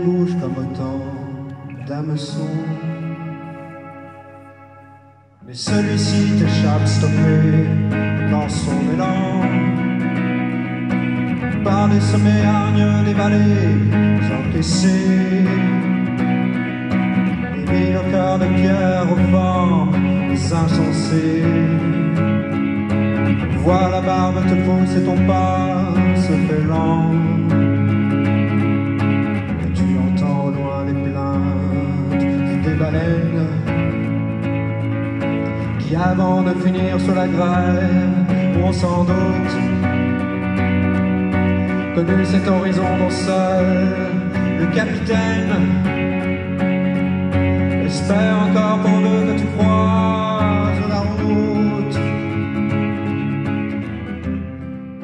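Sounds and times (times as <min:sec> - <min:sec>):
person singing: 0:00.0 - 0:28.8, 0:29.4 - 0:55.0
electric guitar chord ringing: 0:00.0 - 0:55.0.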